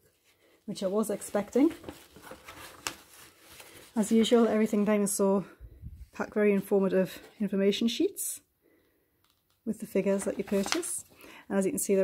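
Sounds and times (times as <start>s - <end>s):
paper sheets rustling: 0.8s - 5.1s, 10.0s - 11.2s
paper crackle: 1.2s - 4.8s, 10.2s - 11.1s.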